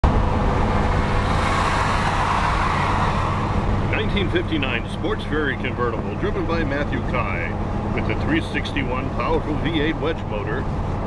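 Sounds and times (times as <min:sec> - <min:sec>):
wind and tyre rush: 0:00.0 - 0:08.1, 0:09.0 - 0:11.0
low engine drone: 0:00.0 - 0:11.0
passing car: 0:00.0 - 0:11.0.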